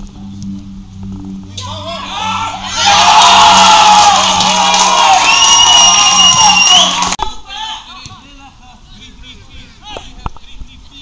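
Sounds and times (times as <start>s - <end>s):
crowd cheering and shouting: 1.6s - 8.0s.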